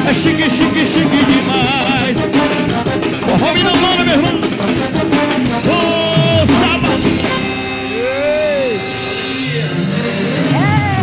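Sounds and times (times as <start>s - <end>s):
live band holding a chord: 0.0s - 11.0s.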